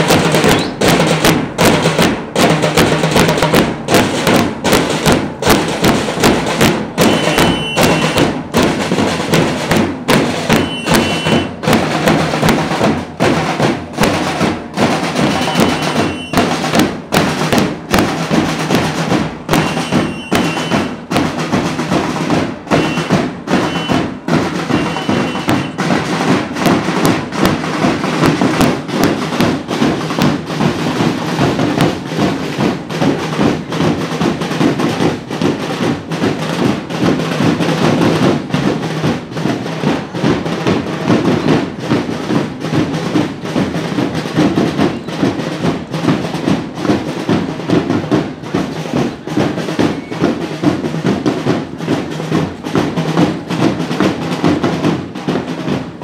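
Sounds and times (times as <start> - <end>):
marching drums beating: 0.0 - 56.0
whistle double blasts: 7.0 - 8.3, 10.6 - 11.5, 15.4 - 16.5, 19.5 - 20.9, 22.8 - 24.1, 24.7 - 25.8.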